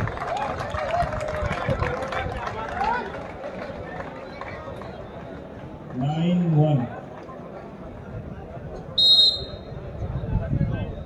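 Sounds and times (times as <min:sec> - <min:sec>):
outdoor crowd murmur: 0:00.0 - 0:11.0
referee's whistle blast: 0:09.0 - 0:09.7.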